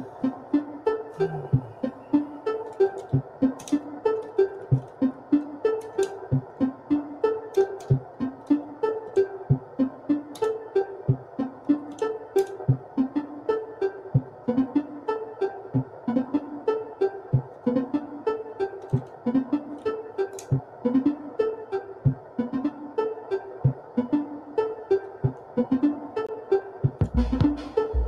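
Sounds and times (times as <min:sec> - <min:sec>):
mid-range synth drone: 0:00.0 - 0:03.0
pulsing low synth notes: 0:01.2 - 0:02.3.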